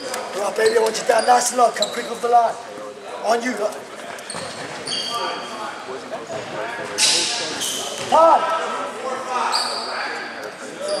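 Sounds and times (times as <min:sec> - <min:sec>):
players chattering: 0:00.0 - 0:11.0
sneakers squeaking on hardwood: 0:04.2 - 0:05.4.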